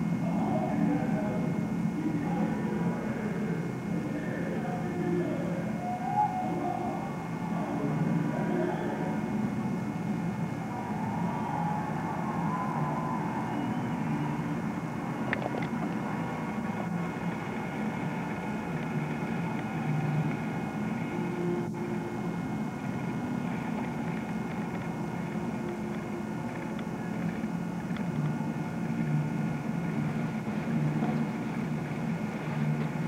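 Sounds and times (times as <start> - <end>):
distant city traffic rumble: 4.4 - 33.0.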